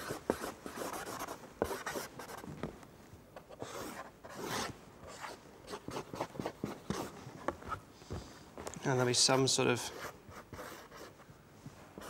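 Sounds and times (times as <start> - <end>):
marker drawing on paper: 0.0 - 2.4, 3.5 - 7.1, 9.8 - 11.2.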